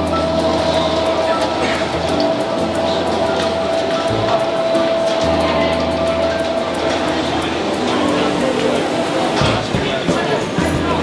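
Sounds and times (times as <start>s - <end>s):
metal roller shutter rattling: 0.0s - 11.0s
steady hum: 0.0s - 11.0s.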